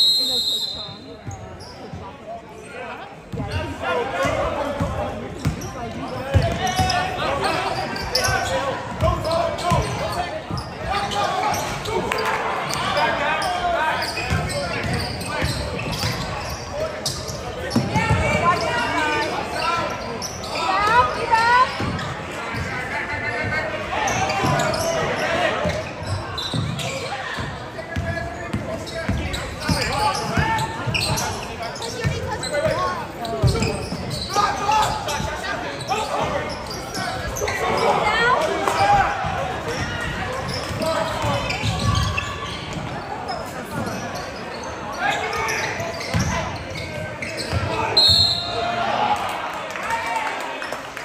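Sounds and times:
spectators chattering and calling: 0:00.0 - 0:51.0.

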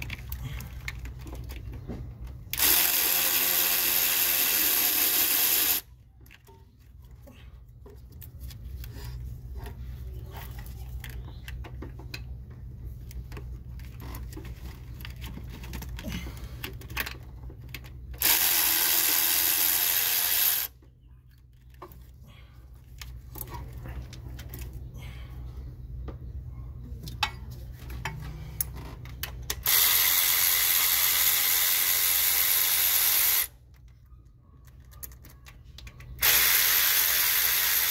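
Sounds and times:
electric ratchet whirring: 0:02.5 - 0:05.9, 0:18.2 - 0:20.8, 0:29.6 - 0:33.6, 0:36.2 - 0:37.9.

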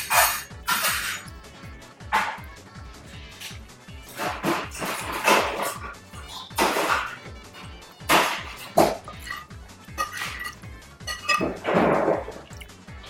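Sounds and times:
spoon scraping a plate: 0:00.0 - 0:01.3, 0:08.6 - 0:11.6
background music: 0:00.0 - 0:13.0.

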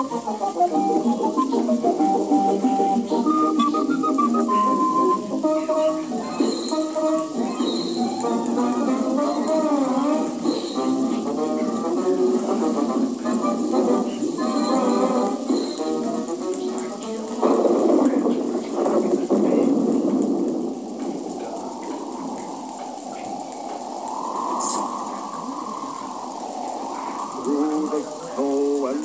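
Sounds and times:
muffled noise: 0:00.0 - 0:29.0
muffled tv music with voices: 0:00.0 - 0:29.0.

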